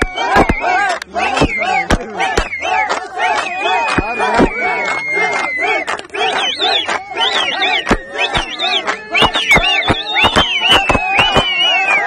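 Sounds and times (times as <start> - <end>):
voices singing fast line: 0.0 - 12.0.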